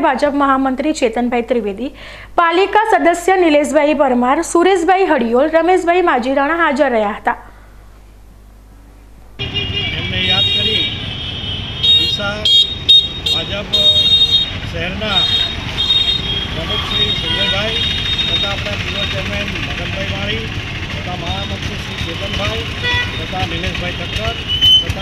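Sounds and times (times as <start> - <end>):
vehicle horns honking: 9.4 - 19.6, 21.2 - 25.0
street traffic: 9.4 - 25.0.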